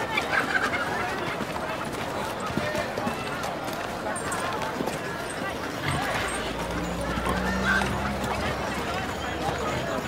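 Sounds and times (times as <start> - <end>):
crowd chatter: 0.0 - 10.0
horses' hooves clopping: 0.0 - 10.0.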